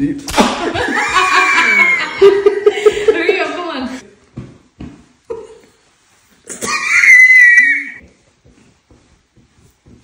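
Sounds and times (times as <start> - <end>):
high-pitched scream: 6.6 - 8.0.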